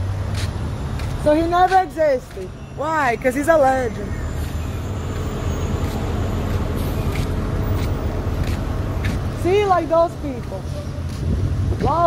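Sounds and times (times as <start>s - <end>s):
bus engine rumbling: 0.0s - 12.0s.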